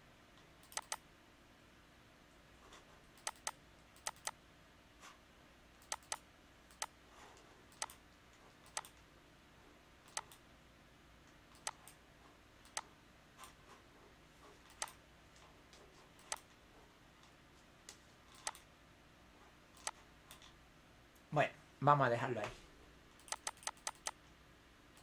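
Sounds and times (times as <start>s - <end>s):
faint steady hum: 0.0s - 25.0s
computer mouse clicks: 0.4s - 1.0s, 2.7s - 4.4s, 5.8s - 9.1s, 10.0s - 10.4s, 11.2s - 12.0s, 12.6s - 13.6s, 14.6s - 16.6s, 17.2s - 18.7s, 19.7s - 20.6s, 23.2s - 24.3s.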